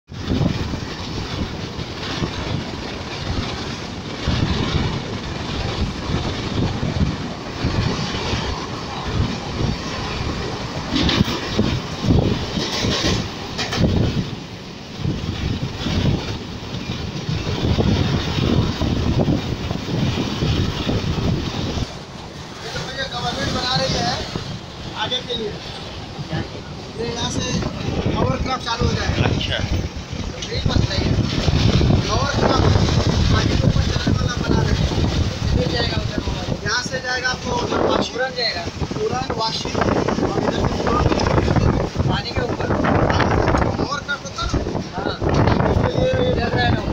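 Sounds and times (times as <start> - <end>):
train wheels rumbling on rails: 0.1 - 46.9.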